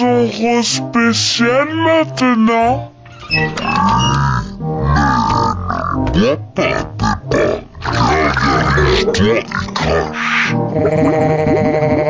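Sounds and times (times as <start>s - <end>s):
slowed background music: 0.0s - 12.0s
slowed deep cartoon voices: 3.6s - 12.0s
cartoon pig grunt: 4.9s - 12.0s.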